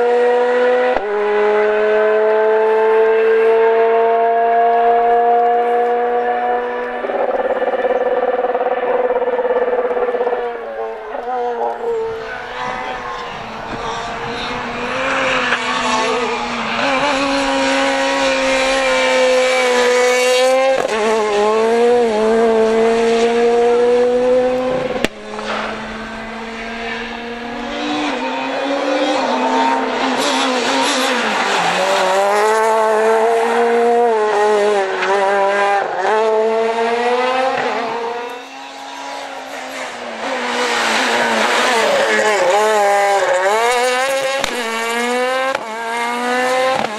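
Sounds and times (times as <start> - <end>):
rally car engine at high revs: 0.0 - 46.9.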